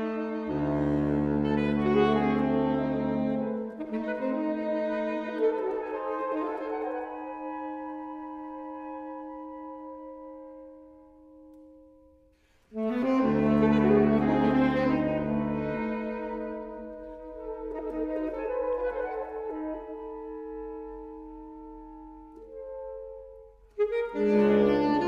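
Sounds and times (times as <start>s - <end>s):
saxophone quartet playing chords: 0.0s - 9.0s, 12.7s - 25.0s.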